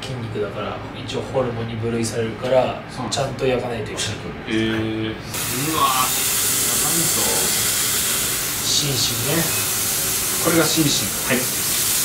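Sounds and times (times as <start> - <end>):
beef sizzling on a grill: 5.4 - 12.0.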